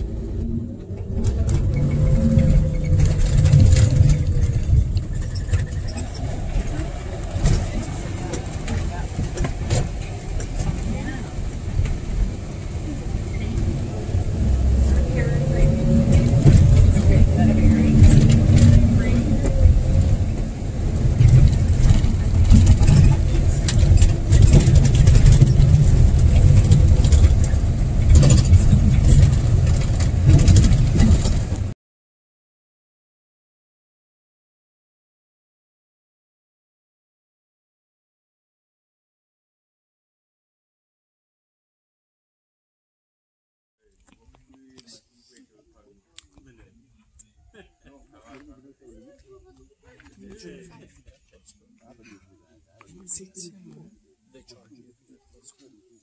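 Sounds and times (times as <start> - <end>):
vehicle engine rumbling: 0.0 - 31.8
knocks and rattles: 1.1 - 13.7, 14.8 - 31.7.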